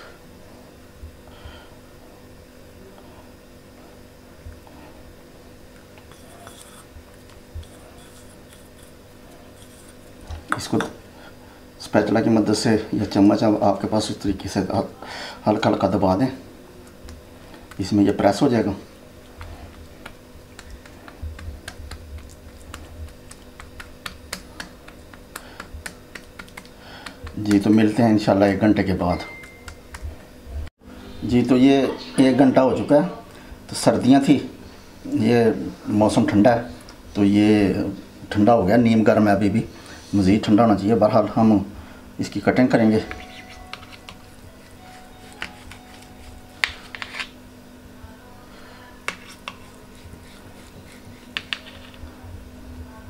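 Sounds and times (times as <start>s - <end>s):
spatula clicking and tapping: 19.4s - 28.0s, 29.2s - 30.1s, 43.1s - 47.2s, 49.1s - 52.0s.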